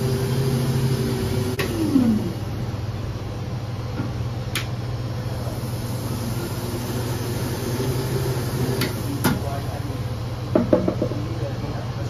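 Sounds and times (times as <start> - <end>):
machine humming: 0.0 - 10.5.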